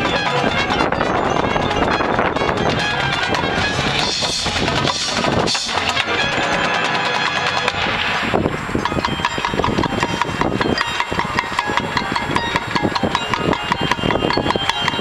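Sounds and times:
concert band playing: 0:00.0 - 0:15.0.

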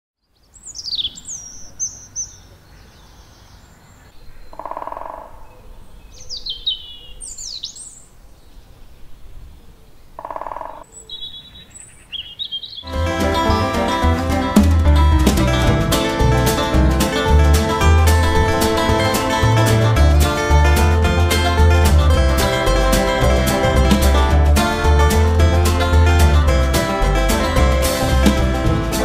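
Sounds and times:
songbirds singing: 0:00.2 - 0:12.9
short lower bird calls: 0:00.4 - 0:12.9
acoustic plucked-string music: 0:12.9 - 0:29.0.

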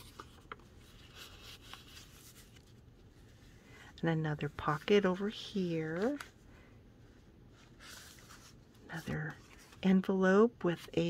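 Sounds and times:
paper rustling: 0:00.0 - 0:03.5, 0:07.5 - 0:10.0.

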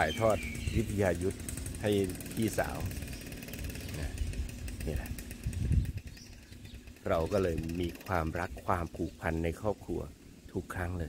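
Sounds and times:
man speaking: 0:00.0 - 0:02.9, 0:07.1 - 0:11.0
low uneven rumble: 0:00.0 - 0:11.0.

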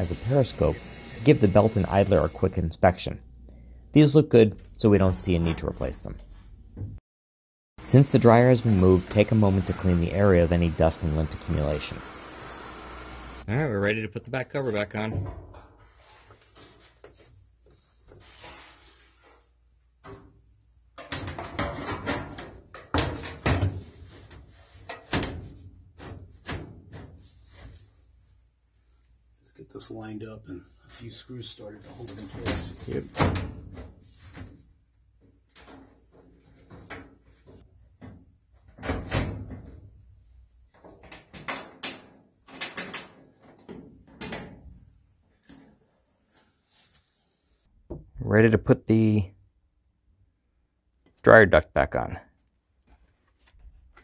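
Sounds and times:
sheet metal rattles and bumps: 0:21.0 - 0:24.0.

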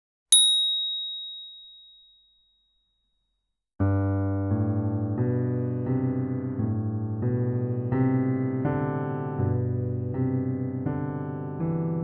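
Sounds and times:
bright high ding: 0:00.3 - 0:02.6.

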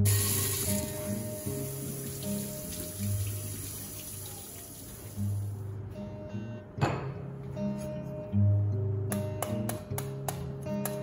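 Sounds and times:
background music: 0:00.0 - 0:04.4, 0:05.0 - 0:11.0
tap water running into steel sink: 0:00.0 - 0:05.3.

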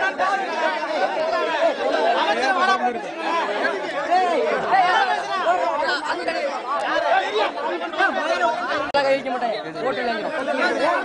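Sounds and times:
men talking and arguing: 0:00.0 - 0:11.0.

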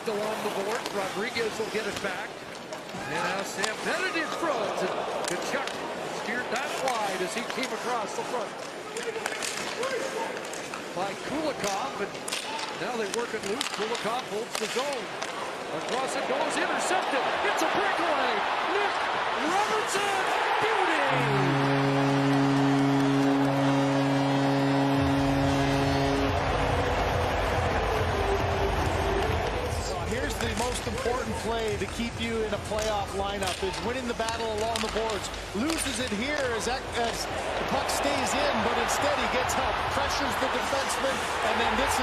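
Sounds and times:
crowd cheering: 0:03.0 - 0:07.7, 0:15.6 - 0:31.8, 0:35.6 - 0:42.0
goal horn: 0:19.4 - 0:31.2, 0:35.6 - 0:42.0.

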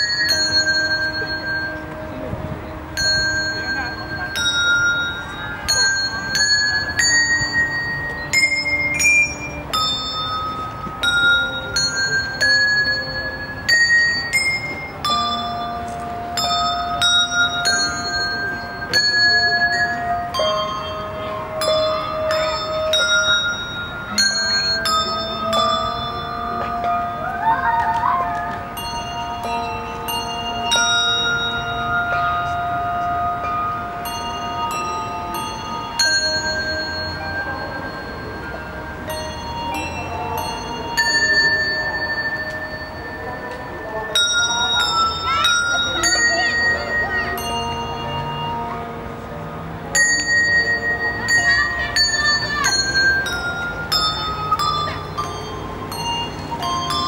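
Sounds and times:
handbell ensemble playing: 0:00.0 - 0:57.0.

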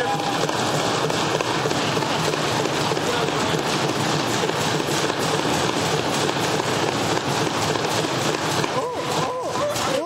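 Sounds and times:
members thumping desks: 0:00.0 - 0:10.0
voices: 0:02.9 - 0:03.8, 0:08.7 - 0:10.0.

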